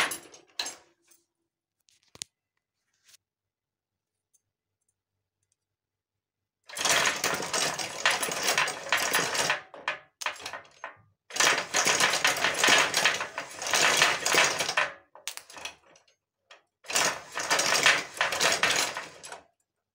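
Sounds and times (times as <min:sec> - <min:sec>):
metallic clattering of steering linkage: 0:06.7 - 0:19.4.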